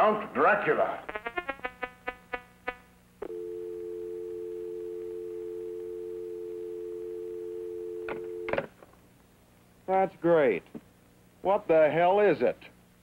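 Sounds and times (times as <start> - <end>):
electronic pulses: 1.0 - 2.9
two-note telephone dial tone: 3.2 - 8.6.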